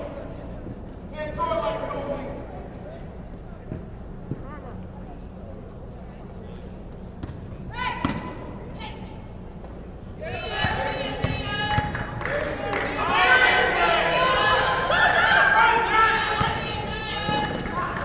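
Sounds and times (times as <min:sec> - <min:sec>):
players calling out: 0:10.1 - 0:18.0.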